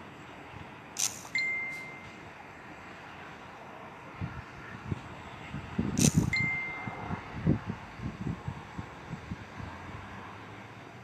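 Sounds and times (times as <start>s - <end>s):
sharp clink with ringing tone: 1.0s - 2.2s, 6.0s - 7.0s.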